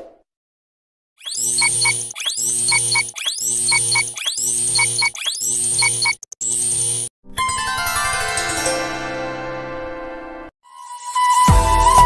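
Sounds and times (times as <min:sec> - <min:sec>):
short beeps: 0:01.2 - 0:07.0.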